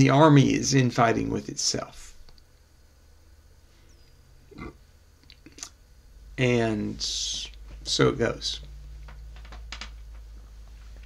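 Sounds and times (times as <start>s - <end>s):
low hum: 0.2s - 11.0s.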